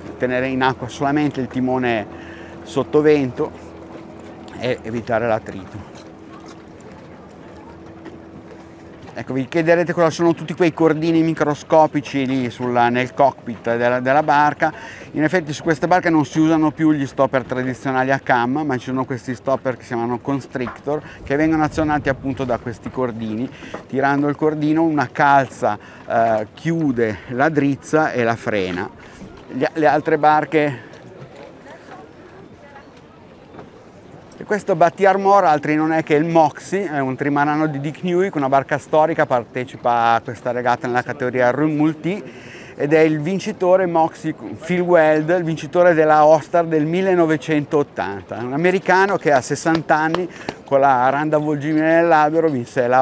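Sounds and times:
steady low hum: 0:00.0 - 0:11.3
faint voices of people: 0:00.0 - 0:43.6.

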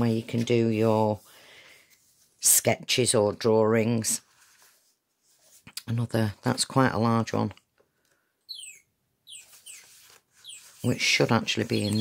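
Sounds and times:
small bird chirping: 0:08.5 - 0:10.9, 0:11.6 - 0:12.0.

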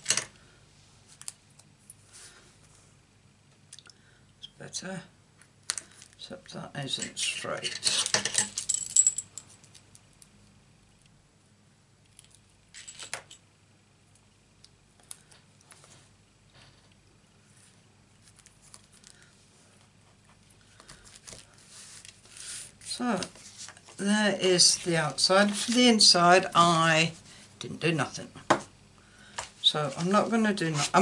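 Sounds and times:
paper rustle: 0:20.3 - 0:24.0, 0:24.6 - 0:25.9.

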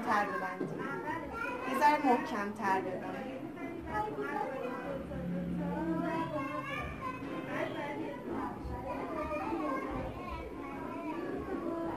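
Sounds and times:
children chattering: 0:00.0 - 0:11.9.

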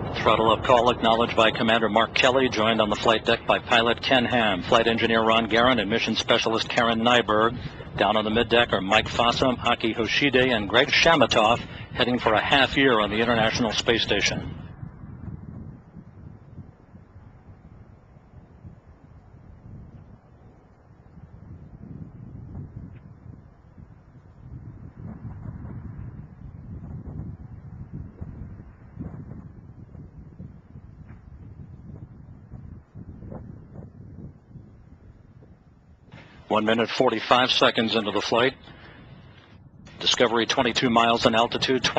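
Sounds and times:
distant rocket rumble: 0:00.0 - 0:41.9
faint crackles: 0:35.4 - 0:41.9.

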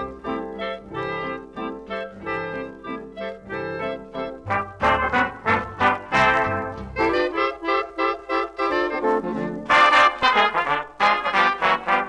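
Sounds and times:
swing dance band with brass: 0:00.0 - 0:12.0.

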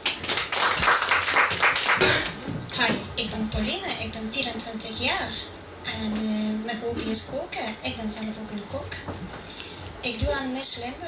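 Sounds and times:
audience clapping: 0:00.0 - 0:02.4.

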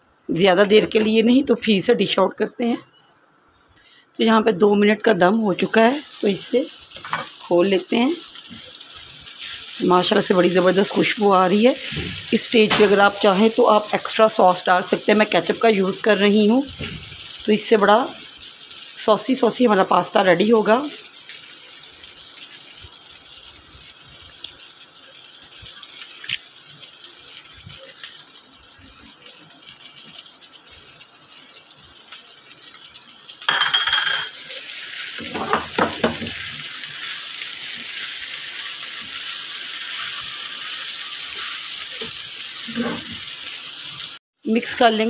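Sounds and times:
pasta sizzling in a frying pan: 0:03.8 - 0:45.0.

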